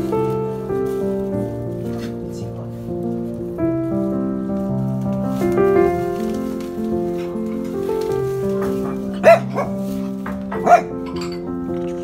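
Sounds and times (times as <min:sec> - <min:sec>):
background music: 0:00.0 - 0:12.0
small dog barking: 0:08.8 - 0:09.8, 0:10.5 - 0:11.0.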